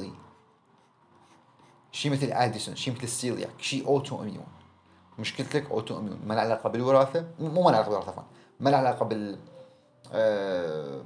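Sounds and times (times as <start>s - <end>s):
pen scratching on paper: 0.2s - 1.9s.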